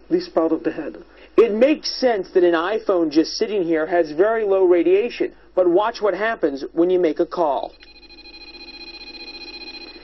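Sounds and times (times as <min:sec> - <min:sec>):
radiation meter buzzing: 0:07.6 - 0:10.0.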